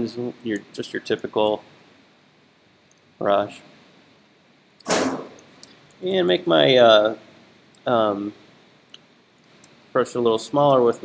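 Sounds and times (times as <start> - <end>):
sharp knock: 4.8 - 5.4.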